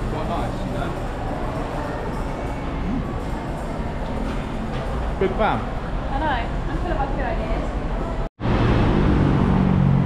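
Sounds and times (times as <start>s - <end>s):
large vehicle engine hum: 8.0s - 10.0s
passing cars: 8.4s - 10.0s.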